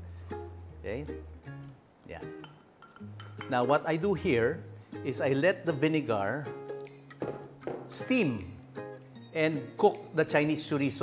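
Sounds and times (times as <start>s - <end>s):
soft background music: 0.0s - 11.0s
glass bowl clinking against pan: 2.4s - 3.8s.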